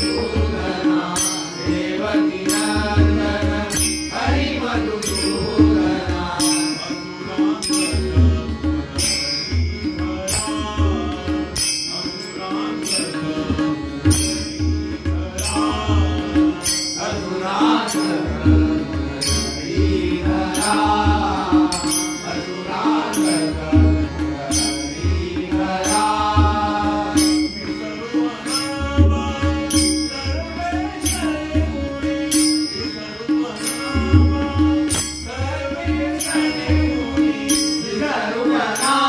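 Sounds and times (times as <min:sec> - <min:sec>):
men chanting: 0:00.0 - 0:39.0
tabla strokes: 0:00.0 - 0:39.0
hand cymbals clashing: 0:01.0 - 0:02.8, 0:03.7 - 0:05.8, 0:06.4 - 0:08.3, 0:09.0 - 0:10.9, 0:11.6 - 0:18.3, 0:19.2 - 0:38.1.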